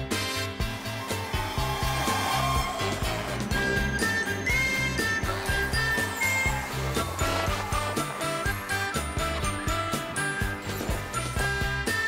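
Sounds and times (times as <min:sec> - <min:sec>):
background music with low beat: 0:00.0 - 0:12.0
electric train pulling in: 0:00.6 - 0:12.0.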